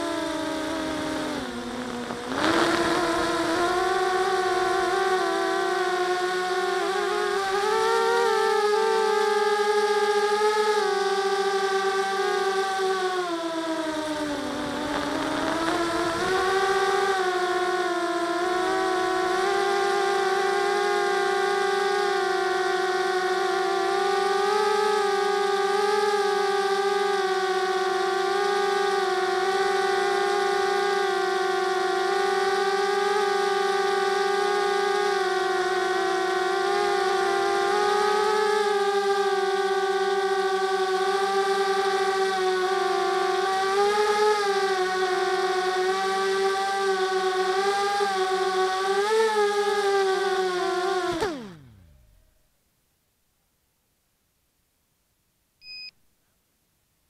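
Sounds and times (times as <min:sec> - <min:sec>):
drone propellers whining: 0:00.0 - 0:52.4
short high electronic beep: 0:55.6 - 0:56.0.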